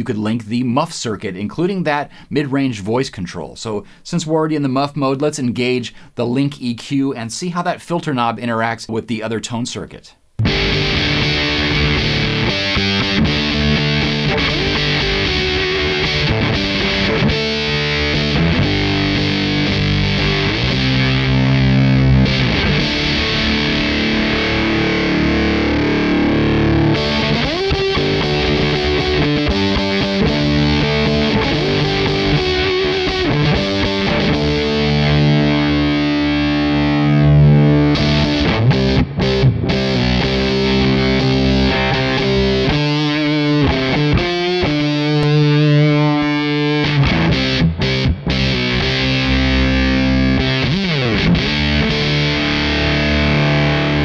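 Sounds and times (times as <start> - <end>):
fuzzed electric guitar: 10.4 - 54.0.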